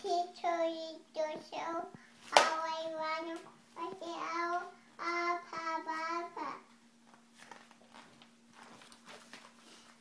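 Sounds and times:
toddler singing: 0.0 - 6.7.

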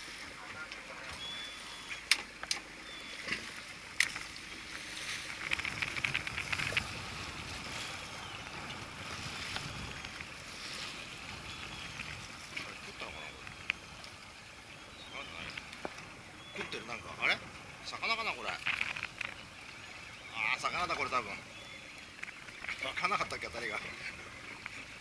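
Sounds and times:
water lapping against boat hull: 0.0 - 25.0
wind: 0.0 - 25.0
light ticks: 13.4 - 14.2.

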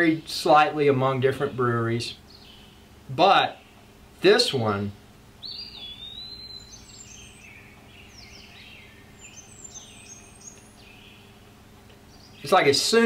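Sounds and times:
low steady hum: 0.0 - 13.0
small birds chirping: 0.0 - 13.0.

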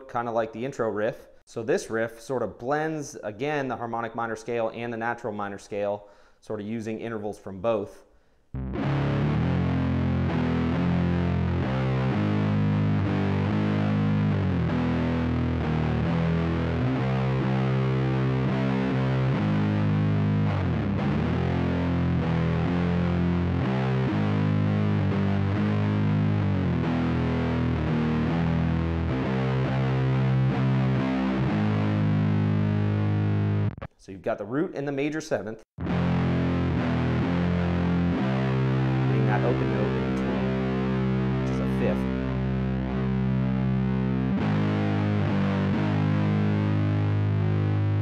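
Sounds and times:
distorted electric guitar riff: 8.6 - 34.0, 35.8 - 48.0.

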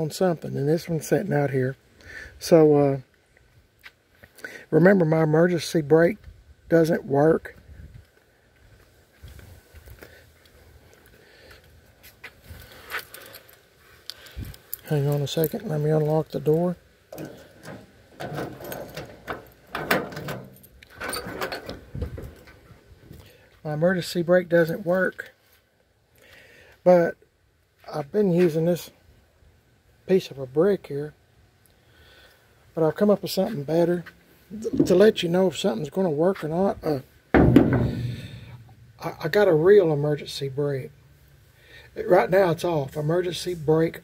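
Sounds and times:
keys in door lock: 17.2 - 21.9
brick thunking on steel truck bed: 37.3 - 39.1.

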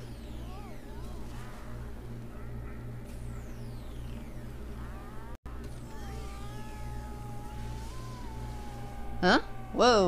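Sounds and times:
wavering pitched glide: 0.0 - 10.0.

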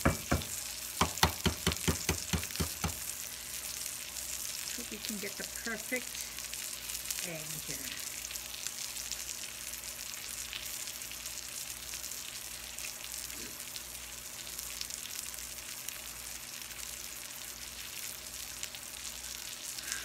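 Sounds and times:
egg sizzling on a griddle: 0.0 - 20.0.

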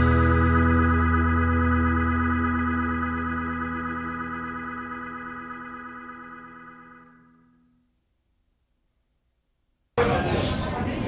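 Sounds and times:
held organ chord: 0.0 - 7.8.

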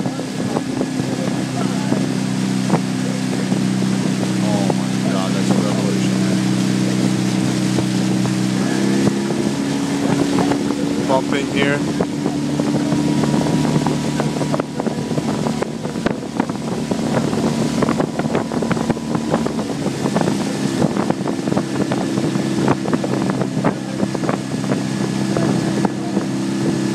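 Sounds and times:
outboard motor droning: 0.0 - 26.9.

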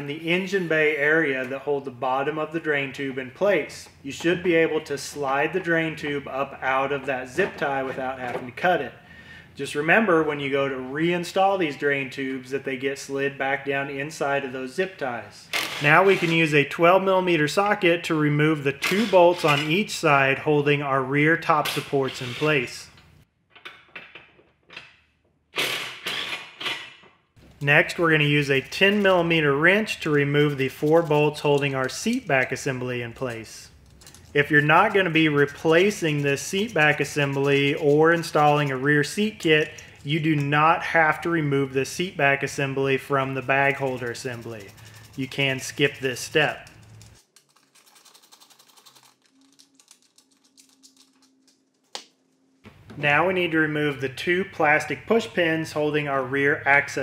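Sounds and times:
wrench clicking rapidly: 43.7 - 47.1.

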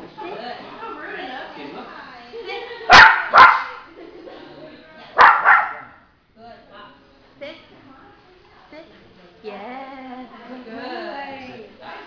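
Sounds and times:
puppy barking: 2.9 - 3.8, 5.2 - 6.0.

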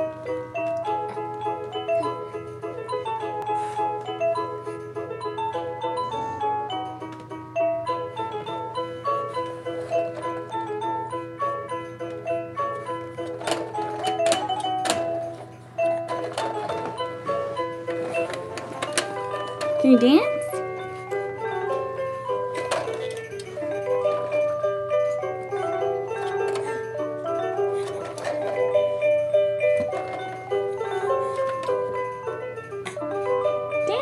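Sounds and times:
electronic toy melody: 0.0 - 34.0.

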